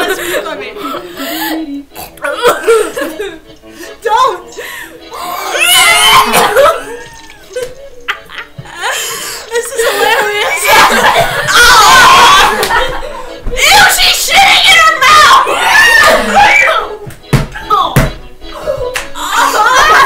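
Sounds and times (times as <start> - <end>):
women laughing and shrieking: 5.1 - 14.0, 15.0 - 16.9, 18.6 - 20.0.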